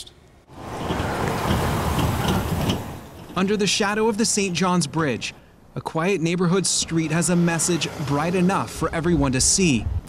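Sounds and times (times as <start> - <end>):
truck driving past: 0.5 - 3.4, 6.6 - 9.1.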